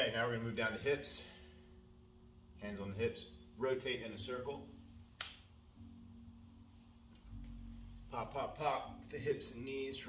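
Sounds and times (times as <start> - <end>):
joint popping: 5.2 - 5.5.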